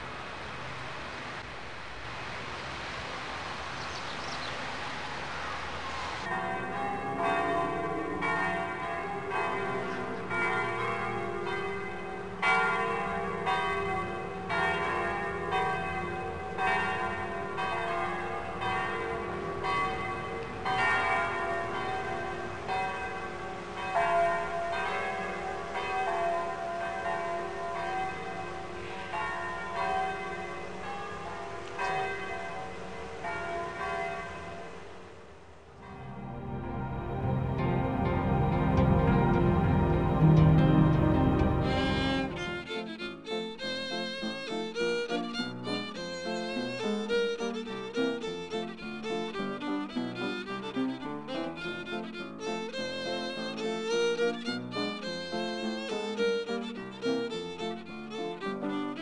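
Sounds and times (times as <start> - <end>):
church bells pealing: 6.2 - 34.9, 35.8 - 42.7.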